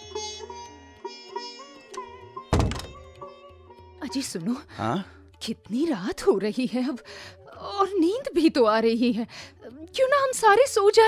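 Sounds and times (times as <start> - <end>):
loud thud: 2.5 - 3.0.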